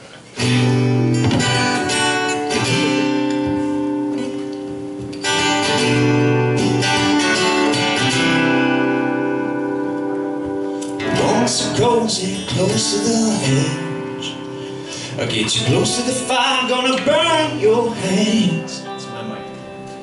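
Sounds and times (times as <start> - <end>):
live band playing sustained chords: 0.4 - 20.0.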